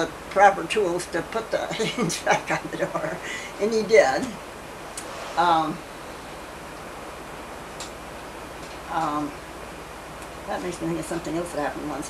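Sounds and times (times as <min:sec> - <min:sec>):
woman speaking: 0:00.0 - 0:04.4, 0:05.3 - 0:05.9, 0:08.9 - 0:09.4, 0:10.5 - 0:12.0
videotape hiss: 0:00.0 - 0:12.0.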